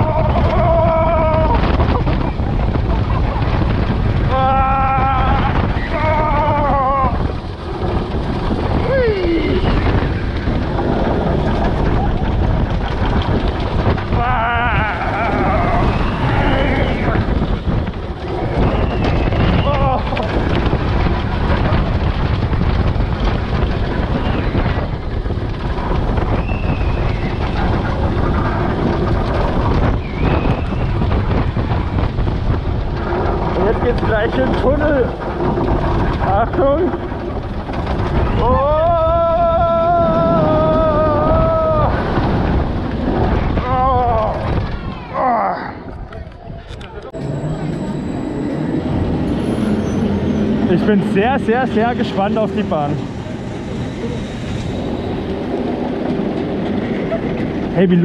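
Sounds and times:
riders screaming and whooping: 0.0 - 57.8
roller coaster rumbling on track: 0.0 - 58.0
wind noise on microphone: 0.0 - 58.0.

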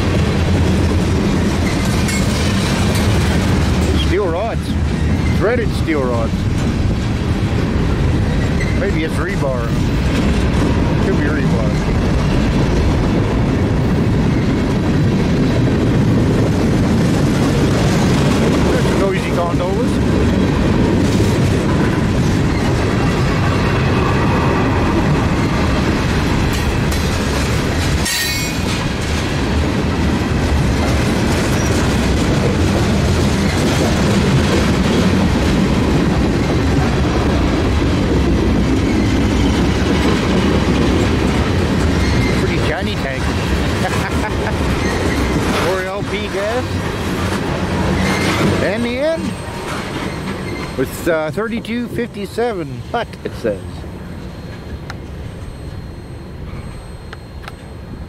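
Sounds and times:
freight cars rattling: 0.0 - 57.9
train wheels rumbling on rail: 0.0 - 58.0
sharp metal clanks: 27.8 - 28.9.

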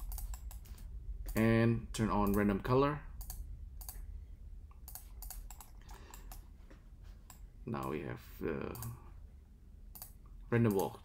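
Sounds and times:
computer mouse and keyboard clicks: 0.0 - 1.4, 3.2 - 4.0, 4.8 - 6.4
low steady hum: 0.0 - 11.0.

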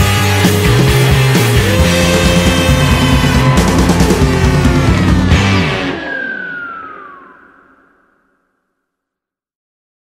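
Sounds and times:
high guitar tone sliding down: 0.0 - 8.6.

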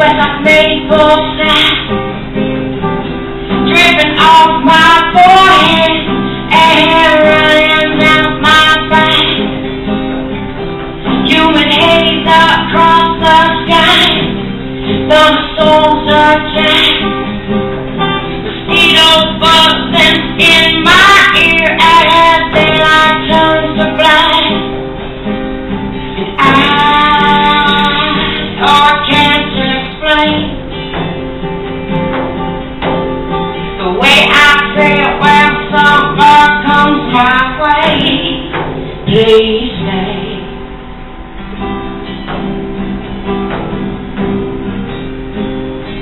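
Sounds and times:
woman singing: 0.0 - 2.1, 3.5 - 9.6, 11.1 - 17.3, 18.5 - 24.8, 26.2 - 30.9, 33.6 - 40.7
acoustic guitar: 0.0 - 46.0.

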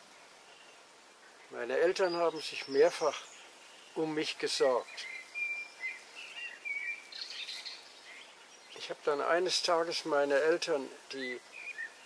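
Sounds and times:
robin singing: 0.0 - 12.0.

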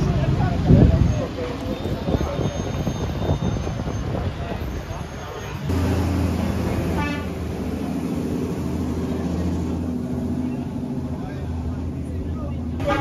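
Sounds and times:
vehicle engine idling: 5.6 - 13.0.

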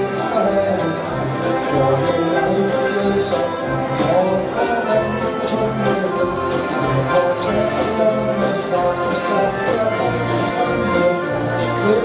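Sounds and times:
accordions playing chords: 0.0 - 12.0
guitar: 0.0 - 12.0.

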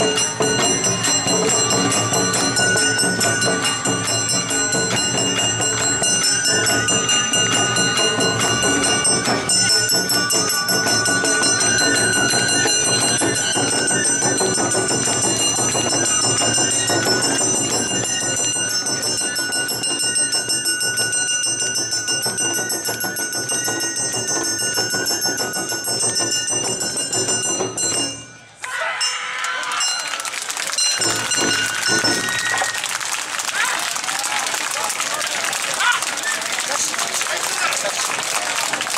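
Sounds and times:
crowd voices: 0.0 - 21.4, 28.6 - 38.9
bell-like ringing: 0.0 - 35.6
applause: 1.1 - 8.6, 29.3 - 38.9.

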